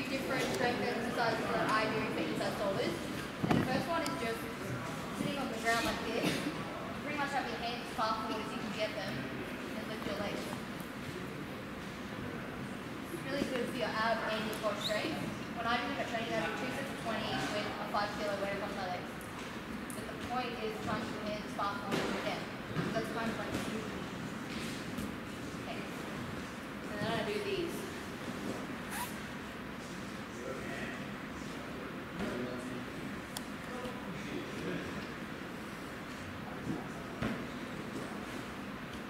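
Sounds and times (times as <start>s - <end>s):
woman talking: 0.0s - 4.6s, 5.2s - 6.4s, 7.0s - 9.2s, 13.2s - 19.1s, 19.9s - 23.9s, 26.8s - 27.9s
steady background noise: 0.0s - 39.0s.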